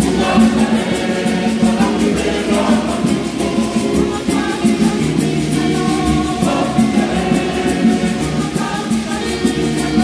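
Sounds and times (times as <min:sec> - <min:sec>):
high ticking beat: 0:00.0 - 0:10.0
women's choir singing a hymn: 0:00.0 - 0:10.0.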